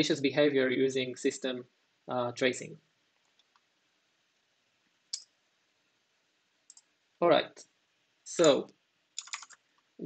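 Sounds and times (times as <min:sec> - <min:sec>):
computer click: 0:06.7 - 0:06.9, 0:08.3 - 0:09.6.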